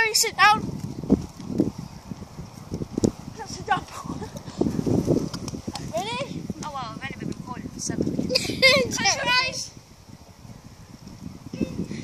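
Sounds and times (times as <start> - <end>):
children's voices: 0.0 - 0.6, 3.4 - 4.4, 5.8 - 9.8.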